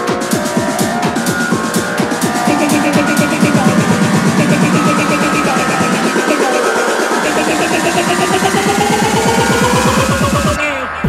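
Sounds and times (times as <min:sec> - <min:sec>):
rising pitched tone: 0:00.0 - 0:11.0
tech house music: 0:00.0 - 0:11.0.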